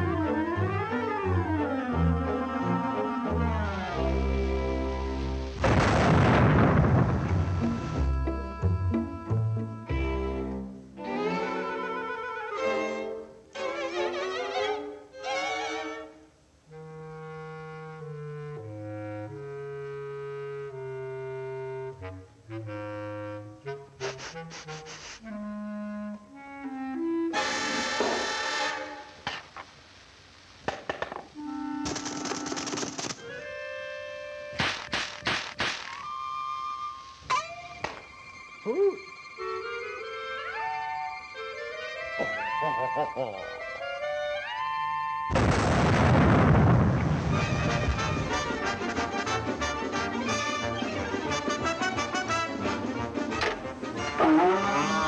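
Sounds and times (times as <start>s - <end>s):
orchestral cartoon music: 0.0s - 5.6s, 7.0s - 29.2s, 35.8s - 45.4s, 47.2s - 55.0s
brief hissing bursts: 24.0s - 25.3s
quick struck hits: 34.6s - 36.0s.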